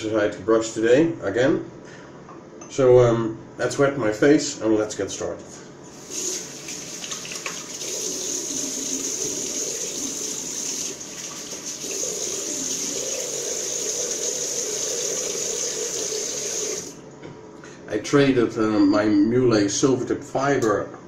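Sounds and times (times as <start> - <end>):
sink tap running: 6.0 - 17.0.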